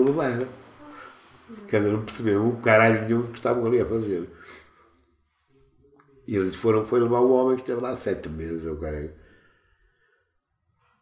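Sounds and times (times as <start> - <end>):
man speaking: 0.0 - 0.7, 1.5 - 4.8, 6.2 - 9.3
soft sighing breath: 0.6 - 1.8.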